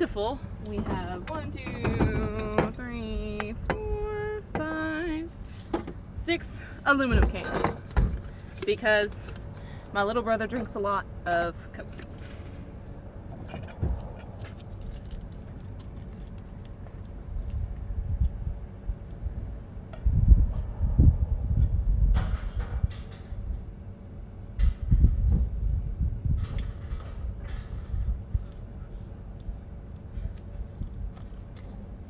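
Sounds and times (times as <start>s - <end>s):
wind on microphone: 17.3s - 23.7s, 24.6s - 28.7s.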